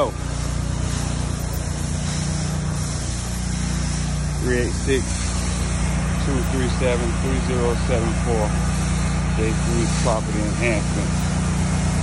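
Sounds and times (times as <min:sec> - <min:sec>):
pressure washer engine humming: 0:00.0 - 0:12.0
steady hiss: 0:00.0 - 0:12.0.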